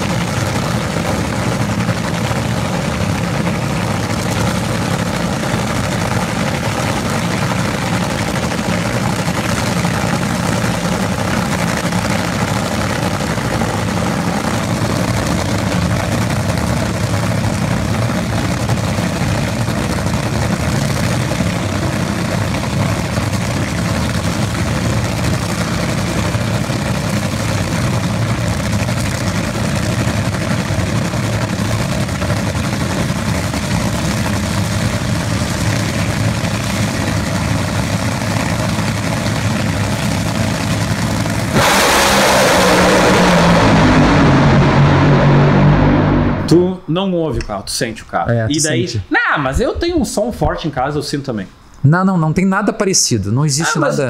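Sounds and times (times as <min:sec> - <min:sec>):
drag racing engines rumbling: 0:00.0 - 0:49.1
drag cars launching blast: 0:40.6 - 0:46.9.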